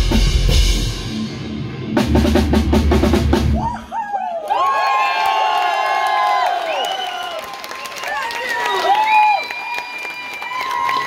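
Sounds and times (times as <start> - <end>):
fast drum roll: 0.0 - 1.3, 1.9 - 3.7
live rock band: 0.0 - 3.8
audience cheering and screaming: 3.6 - 11.0.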